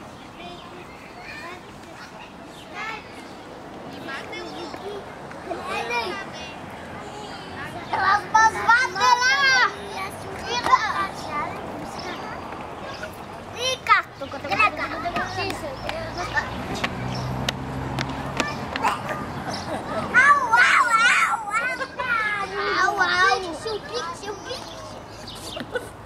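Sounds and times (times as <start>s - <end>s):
children playing: 0.0s - 26.0s.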